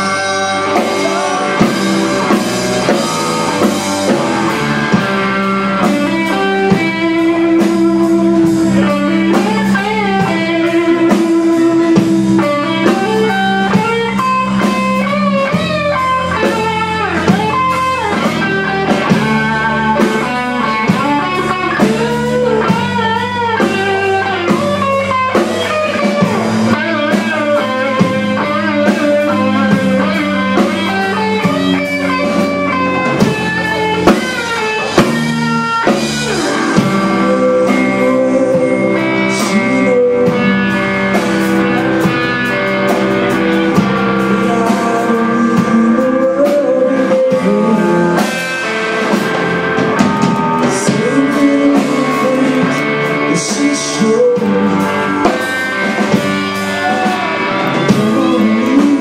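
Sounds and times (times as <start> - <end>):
drum kit: 0.0 - 59.0
electric guitar notes bending: 0.0 - 59.0
live rock band playing: 0.0 - 59.0.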